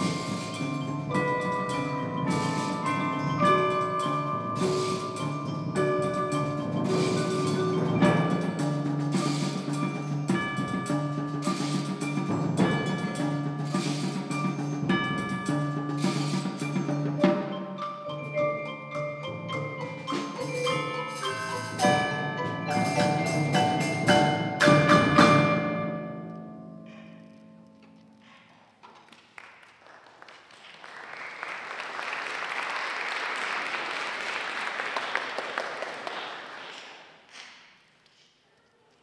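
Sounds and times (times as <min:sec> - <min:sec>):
percussion ensemble playing: 0:00.0 - 0:27.4.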